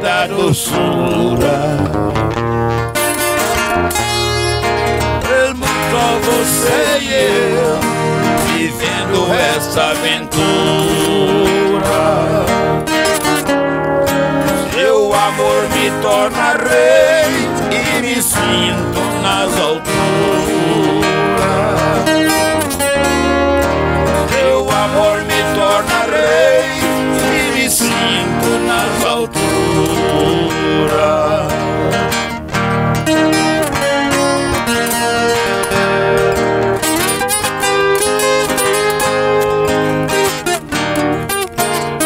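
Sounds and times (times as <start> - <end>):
plucked and strummed guitar duet: 0.0 - 42.0.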